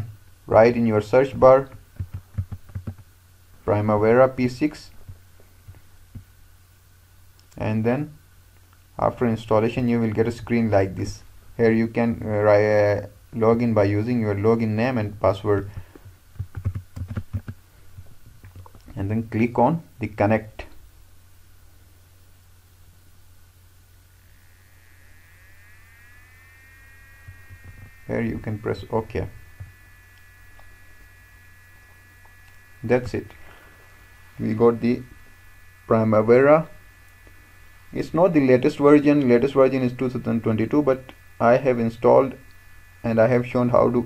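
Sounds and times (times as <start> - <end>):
faint high-pitched whine: 0.0 - 44.0
low electrical hum: 0.0 - 44.0.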